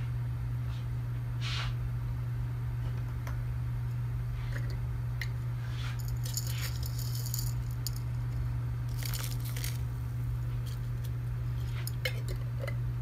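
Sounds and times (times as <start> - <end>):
steady low hum: 0.0 - 13.0
food pieces dropping into pan: 8.9 - 9.8.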